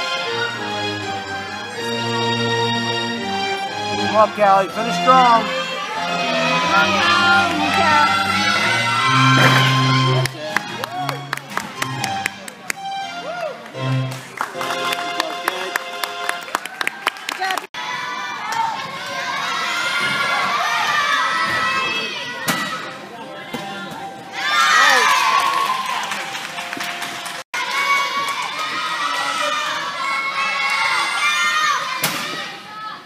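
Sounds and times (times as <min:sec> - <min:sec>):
girls cheering and shouting: 0:24.4 - 0:25.8.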